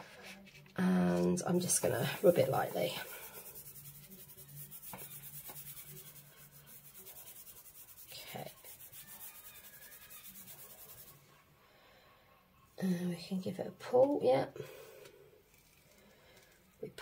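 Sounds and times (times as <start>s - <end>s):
hand rubbing paper: 1.6s - 11.2s.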